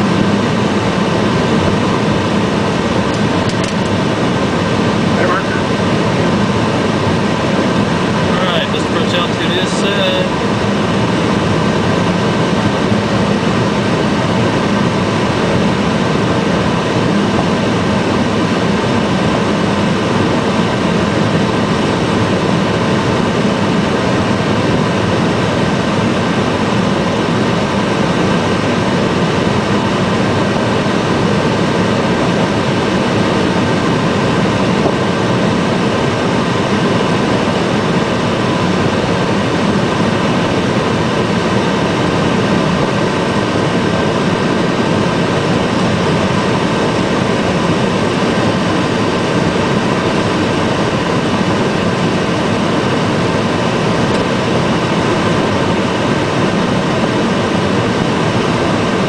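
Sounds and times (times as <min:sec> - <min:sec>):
aircraft cockpit air and engine rush: 0:00.0 - 0:59.0
thin high whine: 0:00.0 - 0:59.0.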